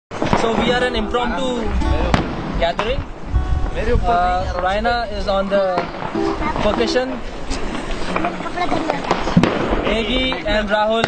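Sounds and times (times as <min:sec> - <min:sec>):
firecrackers cracking: 0:00.1 - 0:03.2, 0:05.6 - 0:11.0
background chatter: 0:00.2 - 0:11.0.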